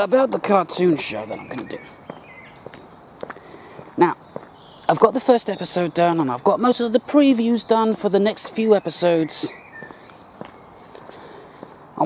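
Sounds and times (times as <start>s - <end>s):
soft footsteps on a footpath: 0.0s - 12.0s.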